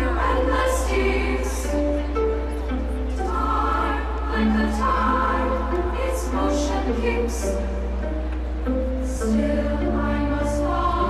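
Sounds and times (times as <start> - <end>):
choir-like singing over pa: 0.0 - 8.1, 9.0 - 11.0.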